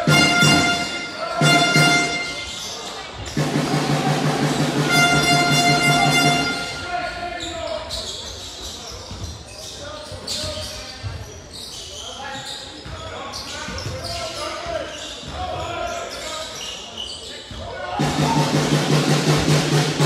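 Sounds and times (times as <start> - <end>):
voices in echoing hall: 0.0 - 20.0.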